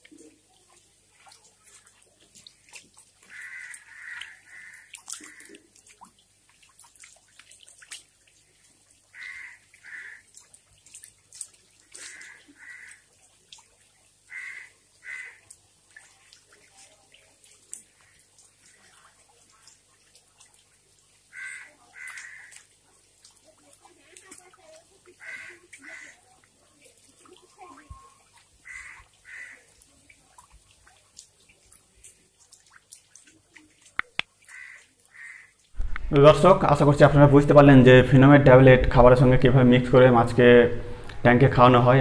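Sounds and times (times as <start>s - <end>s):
fish splashing at water surface: 0.0s - 36.6s
bird harsh calls: 3.3s - 5.5s, 14.3s - 15.4s, 34.5s - 35.5s.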